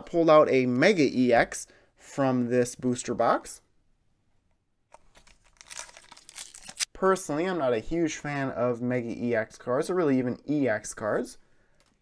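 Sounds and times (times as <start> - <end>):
foil wrapper crinkling and tearing: 5.0 - 6.9.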